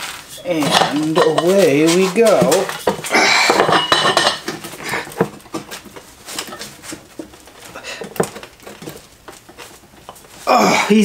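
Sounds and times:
metal tools clicking and clanking: 0:00.3 - 0:10.3.

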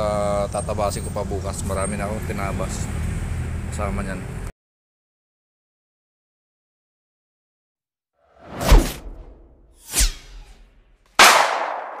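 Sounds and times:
whooshes: 0:08.4 - 0:10.8
loud hit: 0:11.2 - 0:12.0.

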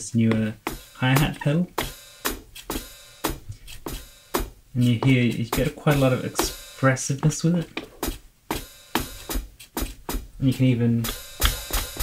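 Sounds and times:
electronic drum hi-hat hits: 0:00.0 - 0:12.0.

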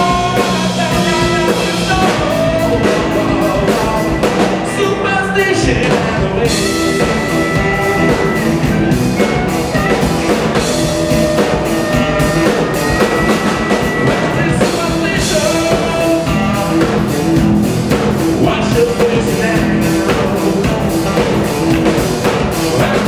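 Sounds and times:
drum kit: 0:00.0 - 0:23.0
electric guitar: 0:00.0 - 0:23.0
harmonica notes: 0:00.0 - 0:23.0
person singing: 0:00.0 - 0:23.0.

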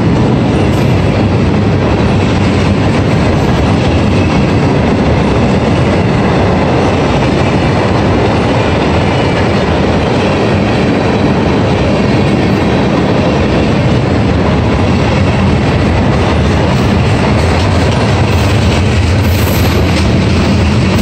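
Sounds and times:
steel wheels running on rails: 0:00.0 - 0:21.0.

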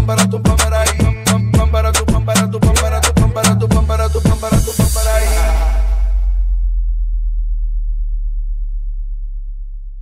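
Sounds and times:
electronic dance beat: 0:00.0 - 0:06.5
deep electronic sub-bass tone: 0:00.0 - 0:10.0.

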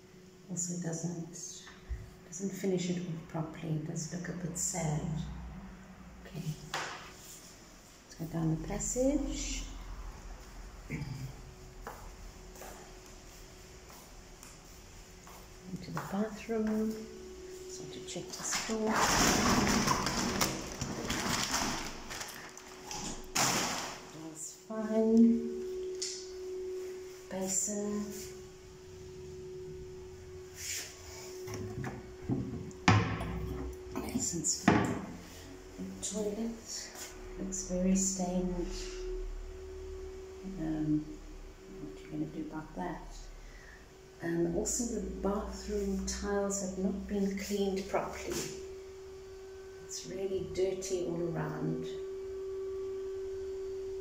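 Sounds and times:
faint hum: 0:00.0 - 0:54.0.

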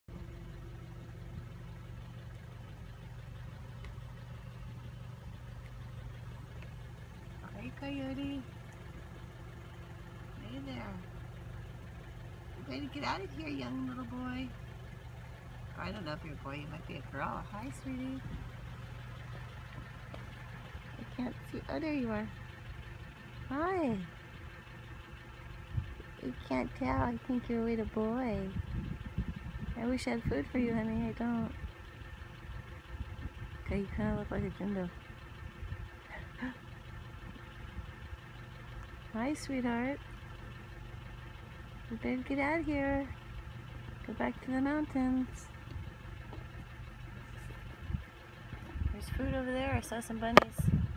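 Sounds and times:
car engine running: 0:00.0 - 0:50.9.

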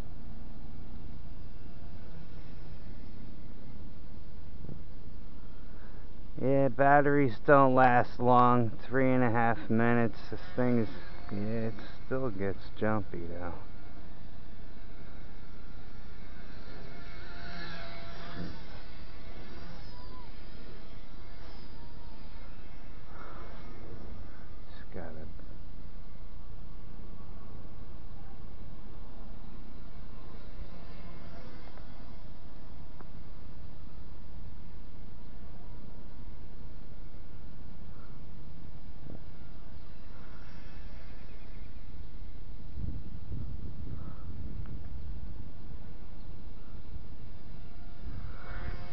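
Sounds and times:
distant toy helicopter motor whine: 0:00.0 - 0:48.9
wind on microphone: 0:42.6 - 0:45.9.

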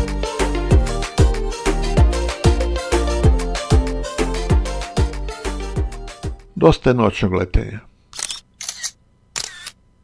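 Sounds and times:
camera shutter clicks: 0:08.1 - 0:09.8.

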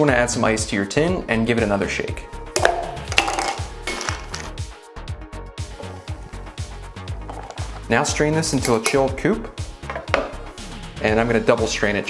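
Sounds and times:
music with steady beat: 0:02.2 - 0:11.7
ice clinking on metal shaker: 0:02.6 - 0:04.4.

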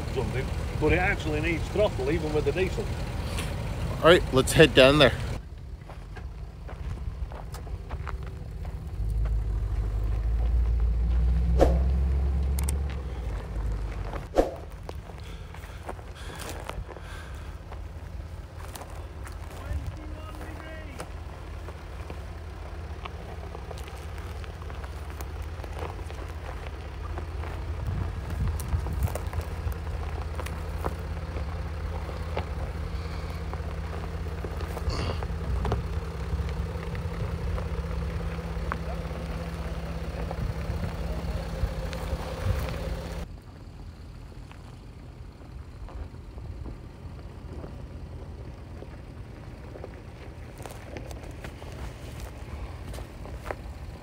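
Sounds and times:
heavy low rumble: 0:00.0 - 0:44.4
car engine running low: 0:00.0 - 0:54.0
tyres crunching over gravel: 0:00.0 - 0:54.0.

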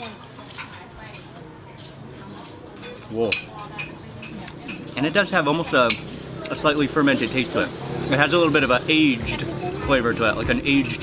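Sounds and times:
ceramic bowls and spoons clinking: 0:00.0 - 0:07.4, 0:09.2 - 0:11.0.

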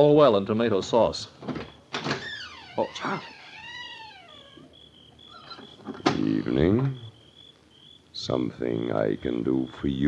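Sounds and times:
crickets chirping: 0:00.9 - 0:10.0.

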